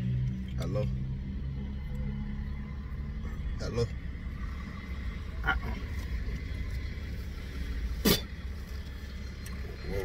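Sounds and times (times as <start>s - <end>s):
car idling inside cabin: 1.4s - 10.0s.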